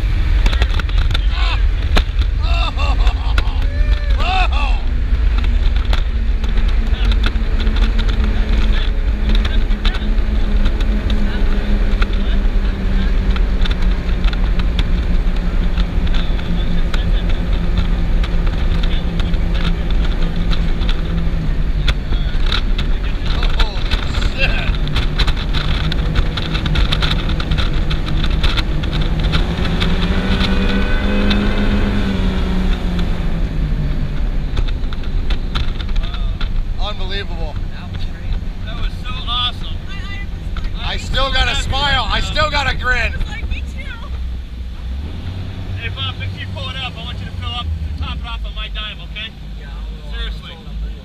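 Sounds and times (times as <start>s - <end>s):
powerboat engines at speed: 0.0s - 51.0s
voices: 0.0s - 51.0s.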